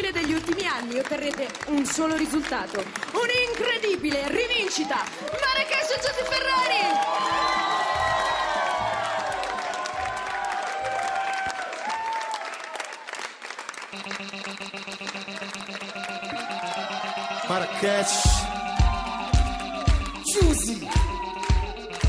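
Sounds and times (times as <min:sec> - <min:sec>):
music: 0:00.0 - 0:10.8, 0:13.9 - 0:22.0
studio audience clapping: 0:00.0 - 0:22.0
audience cheering: 0:04.4 - 0:13.4, 0:15.6 - 0:22.0.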